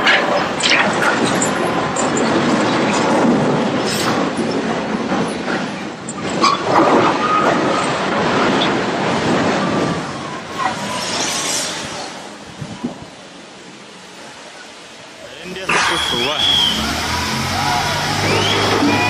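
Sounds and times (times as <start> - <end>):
steady rush of noise: 0.0 - 19.0
high screeching of steel: 15.7 - 19.0.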